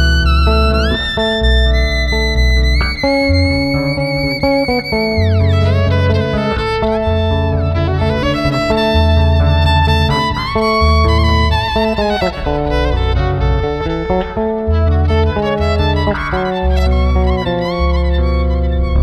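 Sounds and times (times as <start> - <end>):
electric violin slow melody: 0.0 - 19.0
plucked electric bass line: 0.0 - 19.0.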